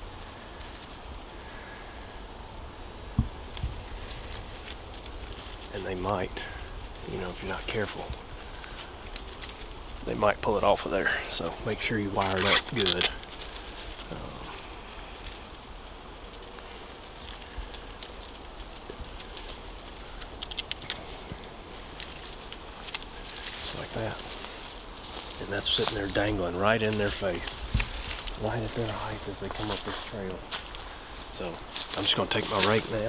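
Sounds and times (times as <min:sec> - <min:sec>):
faint rustling: 0:00.0 - 0:33.0.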